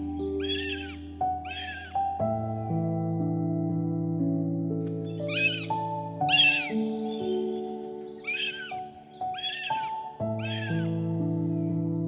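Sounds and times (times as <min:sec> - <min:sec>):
soft background music: 0:00.0 - 0:12.0
eagle calling: 0:00.3 - 0:02.2, 0:05.1 - 0:11.1.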